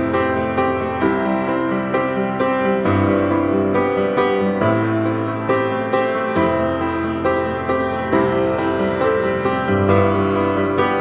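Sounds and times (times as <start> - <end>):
piano playing chords: 0.0 - 11.0.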